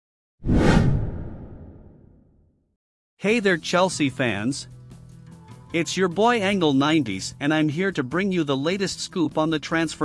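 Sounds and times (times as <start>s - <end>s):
whoosh sound effect: 0.4s - 2.2s.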